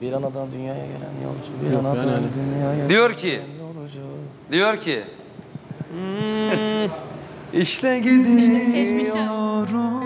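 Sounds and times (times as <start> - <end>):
man singing steady note: 1.6 - 4.5, 5.7 - 10.0.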